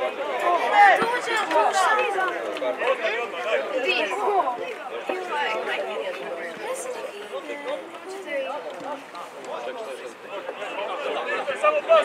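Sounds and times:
people chatting: 0.0 - 12.0.

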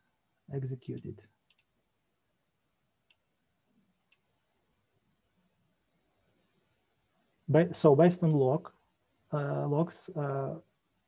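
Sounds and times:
computer mouse clicks: 0.9 - 1.8, 4.1 - 4.3.

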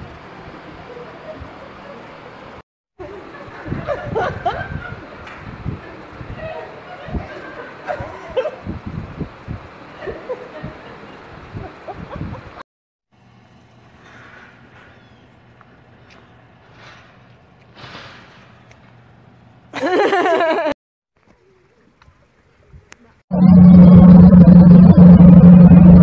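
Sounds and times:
audience laughing: 3.0 - 5.2, 9.9 - 12.6, 19.8 - 20.8
steady low hum: 23.3 - 26.0.

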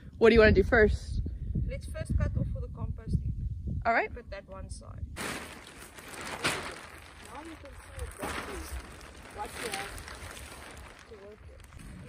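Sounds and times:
plastic sheeting rustling: 5.2 - 12.0.

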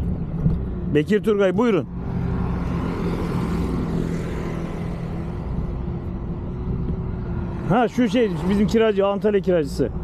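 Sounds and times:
outdoor noise: 0.0 - 10.0.

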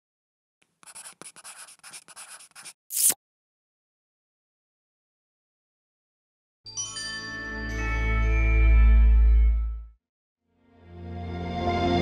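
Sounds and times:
pen scribbling strokes: 0.8 - 3.2.

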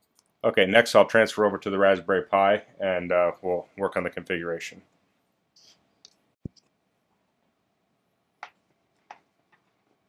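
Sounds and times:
small clicks: 0.0 - 0.4.

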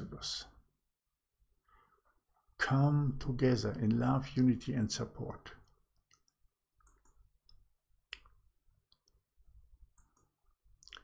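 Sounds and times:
computer mouse clicks: 6.0 - 9.2, 9.9 - 11.0.

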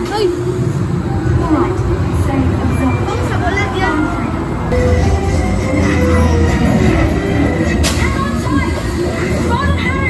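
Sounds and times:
ride vehicle rumble: 0.0 - 10.0.

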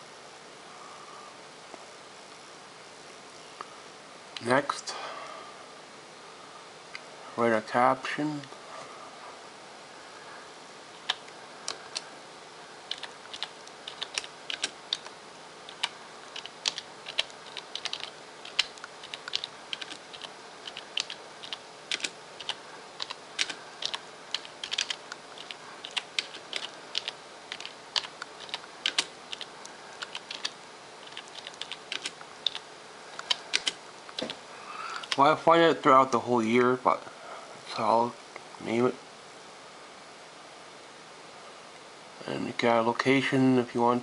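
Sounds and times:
computer keyboard typing: 12.9 - 15.1, 15.7 - 32.6, 33.2 - 34.4, 35.0 - 35.2.

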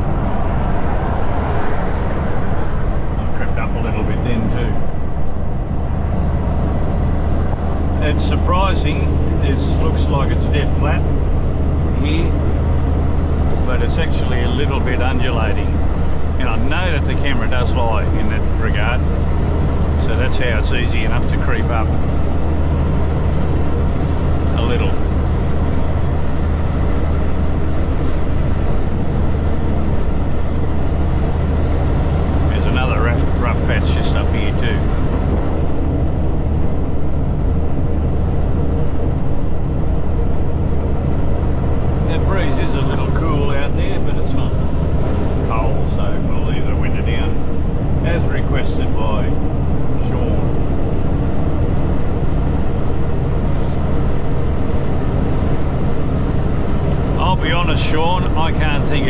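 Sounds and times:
tyre and road noise: 0.0 - 8.3
diesel truck engine droning: 0.0 - 59.0
low hum: 0.0 - 59.0.

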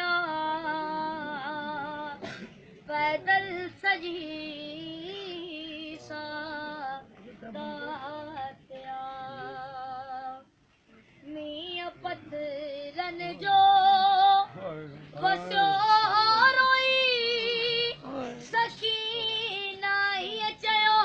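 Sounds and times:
boy chanting a lament: 0.0 - 2.2, 2.9 - 10.5, 15.2 - 21.0.

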